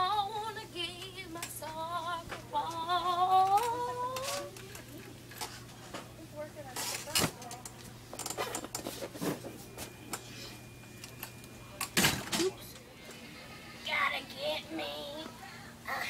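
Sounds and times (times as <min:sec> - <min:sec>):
low steady hum: 0:00.0 - 0:16.0
faint voices: 0:09.4 - 0:16.0.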